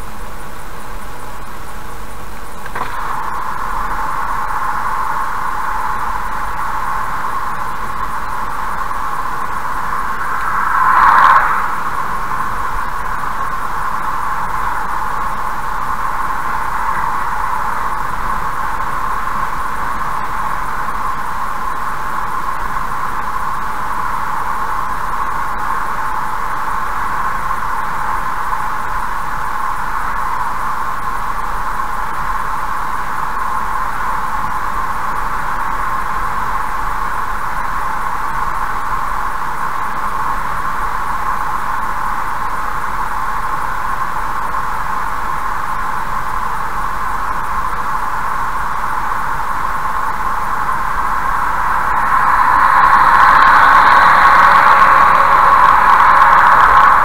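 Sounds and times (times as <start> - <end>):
tyre and road noise: 0.9 - 57.0
truck passing: 2.6 - 20.6, 49.0 - 57.0.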